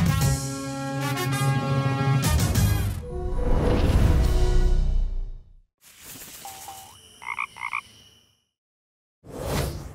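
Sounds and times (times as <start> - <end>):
cartoon frog croaks: 6.4 - 7.9.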